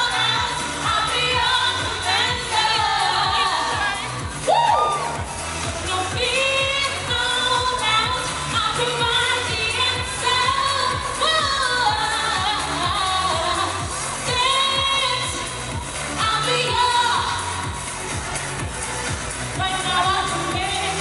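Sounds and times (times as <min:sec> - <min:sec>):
woman singing into microphone: 0:00.0 - 0:17.8, 0:19.5 - 0:21.0
pop backing track with beat: 0:00.0 - 0:21.0.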